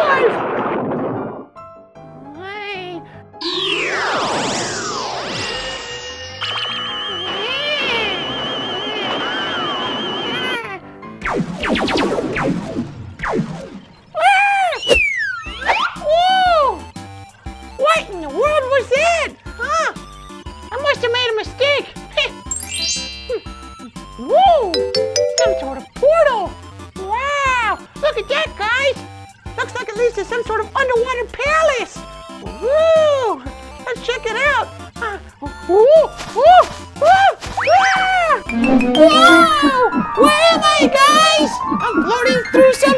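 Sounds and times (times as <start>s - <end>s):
electronic warbling tone: 22.5s - 23.9s
sweeping tones rising and falling: 22.5s - 23.9s, 24.8s - 25.9s, 38.4s - 41.9s
children's music with steady beat: 22.5s - 24.0s, 24.7s - 26.1s, 38.4s - 42.9s.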